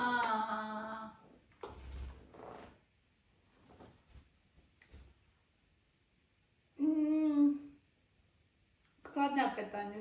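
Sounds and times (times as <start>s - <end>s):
woman humming: 6.8s - 7.8s.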